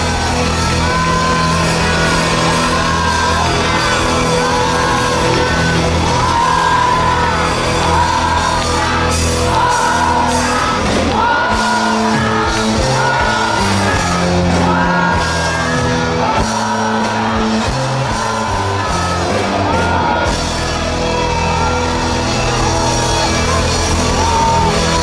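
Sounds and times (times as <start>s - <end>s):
live pop-rock band: 0.0s - 25.0s.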